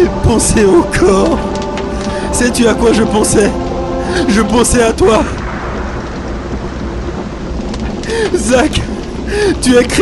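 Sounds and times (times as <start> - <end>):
low rumble: 0.0 - 10.0
steady rushing noise: 0.0 - 10.0.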